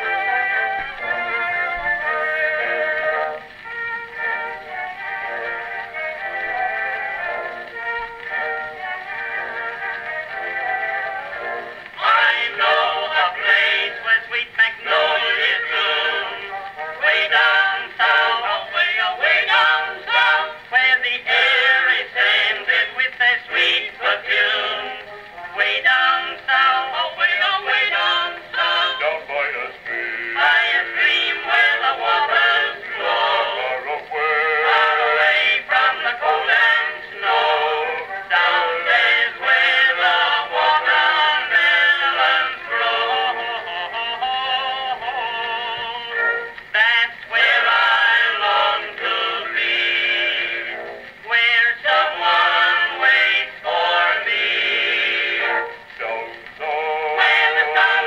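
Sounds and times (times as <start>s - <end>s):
male vocal quintet singing: 0.0s - 3.5s, 8.3s - 58.0s.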